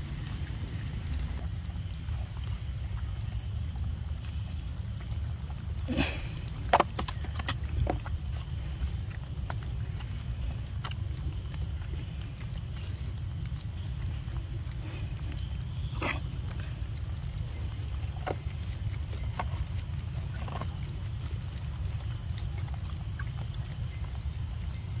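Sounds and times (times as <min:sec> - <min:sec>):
low outdoor rumble: 0:00.0 - 0:25.0.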